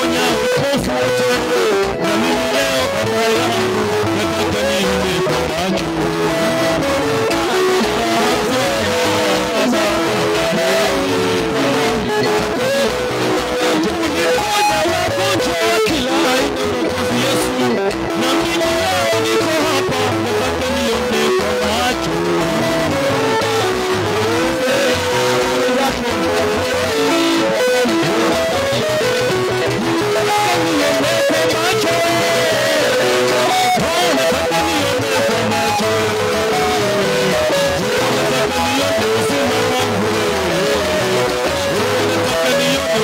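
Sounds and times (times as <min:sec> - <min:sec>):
drums: 0:00.0 - 0:43.0
electric guitar: 0:00.0 - 0:43.0
keyboard: 0:00.0 - 0:43.0
voices singing: 0:00.0 - 0:43.0.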